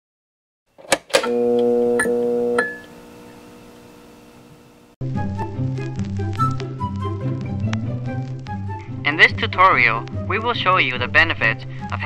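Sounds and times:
held musical chord: 1.3 - 2.8.

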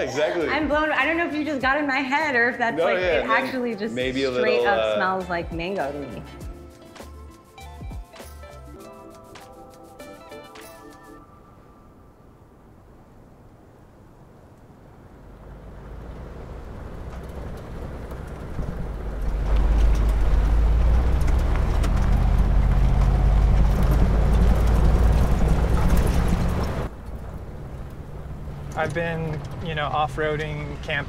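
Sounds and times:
engine and tyre rumble: 13.5 - 31.0.

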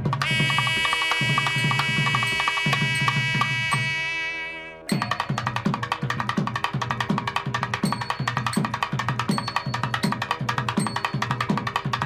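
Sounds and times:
wind instrument high held tone: 0.2 - 5.4.

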